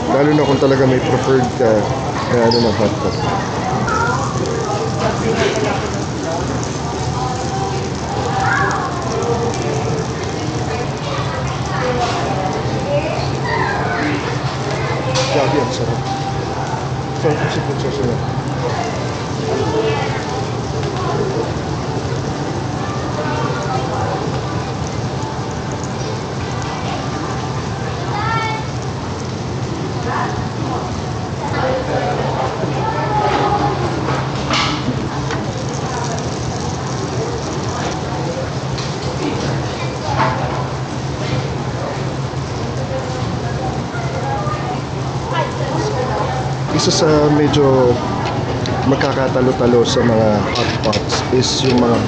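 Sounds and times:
meat sizzling on grill plate: 0.0s - 52.0s.

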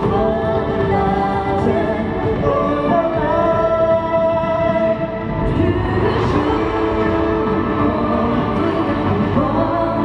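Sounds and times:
music: 0.0s - 10.0s
woman singing into microphone: 0.0s - 10.0s.

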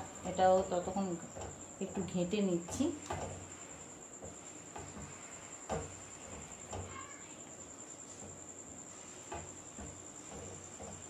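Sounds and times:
cricket trilling: 0.0s - 11.0s.

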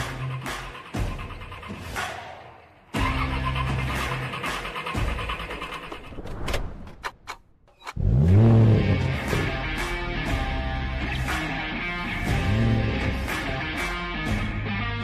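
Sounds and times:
music: 0.0s - 6.2s, 8.0s - 15.0s
car engine starting and revving: 7.9s - 10.7s, 12.1s - 13.5s.

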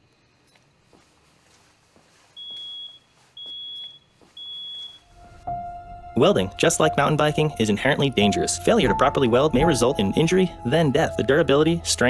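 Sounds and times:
smoke alarm beeping: 2.4s - 5.2s
music with low rumble: 5.1s - 12.0s.

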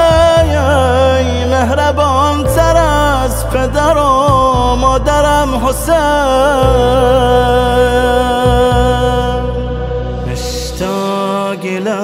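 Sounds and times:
held chord over low drone: 0.0s - 12.0s
lead voice singing: 0.0s - 12.0s.

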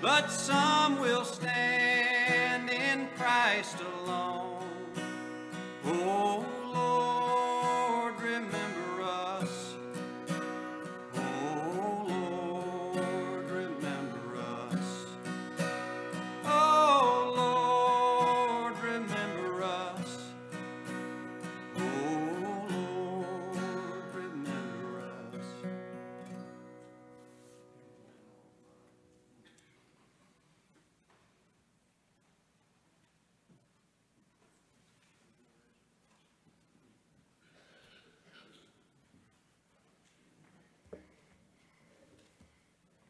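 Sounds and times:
man singing a hymn: 0.0s - 10.2s, 10.8s - 20.7s, 21.4s - 25.8s
acoustic guitar strumming: 0.0s - 28.0s.

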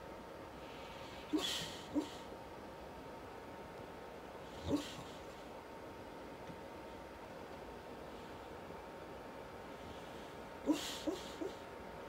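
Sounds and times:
dog woofing softly in sleep: 0.6s - 2.3s, 4.4s - 5.5s, 9.7s - 11.8s.

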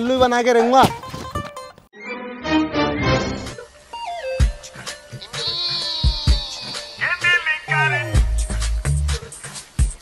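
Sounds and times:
background music with a beat: 3.0s - 10.0s.

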